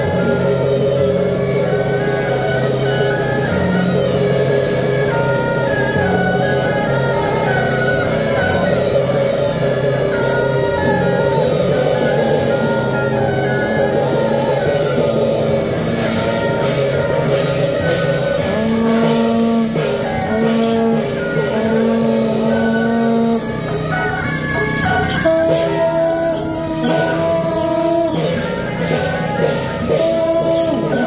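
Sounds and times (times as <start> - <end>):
gong and cymbal strikes: 0.0 - 31.0
reedy horn melody: 0.0 - 31.0.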